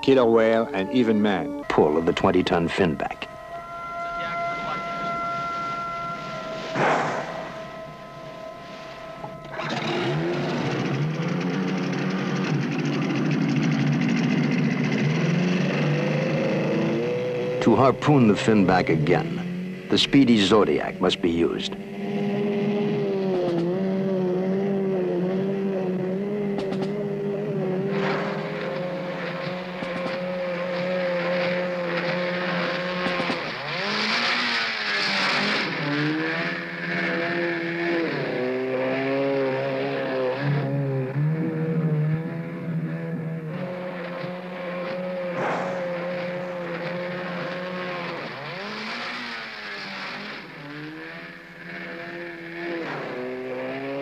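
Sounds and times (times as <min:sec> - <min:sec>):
outboard motor running: 0:00.0 - 0:54.0.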